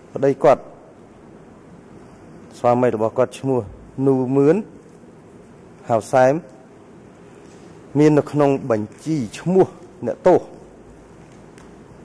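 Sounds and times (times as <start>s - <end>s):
faint steady hiss: 0.0s - 12.0s
man speaking over a microphone: 0.1s - 0.8s, 2.6s - 4.7s, 5.8s - 6.6s, 8.0s - 10.7s.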